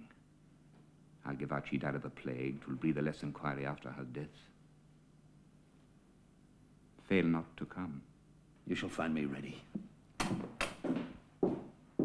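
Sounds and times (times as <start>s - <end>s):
boot footsteps on hard floor: 9.7s - 12.0s.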